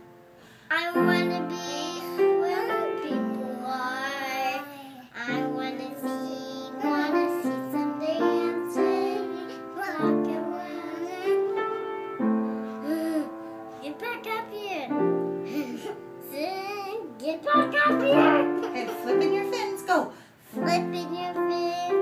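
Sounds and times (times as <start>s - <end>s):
girls singing a slow song: 5.2s - 12.0s.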